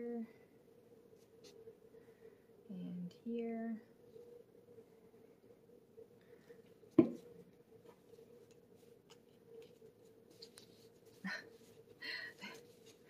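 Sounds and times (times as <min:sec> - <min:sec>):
faint steady hum: 0:00.0 - 0:13.0
paper rustling and folding: 0:07.8 - 0:13.0.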